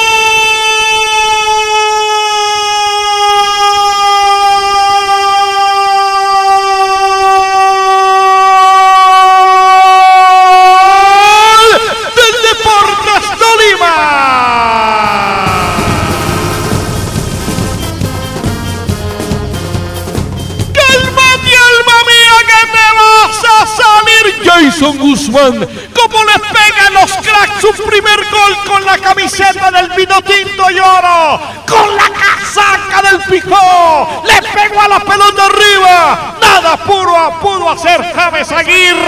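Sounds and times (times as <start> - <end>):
commentator shouting goal: 0.0 - 16.6, 20.7 - 39.0.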